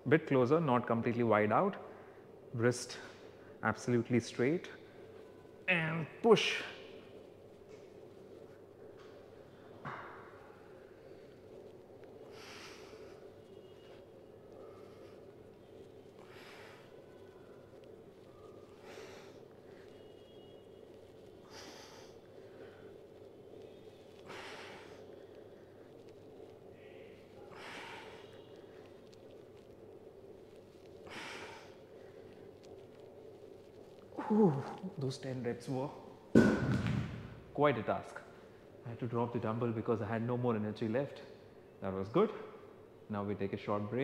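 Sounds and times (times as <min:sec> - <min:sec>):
faint steady hum: 0:00.0 - 0:44.0
man breathing out forcefully: 0:24.2 - 0:25.1.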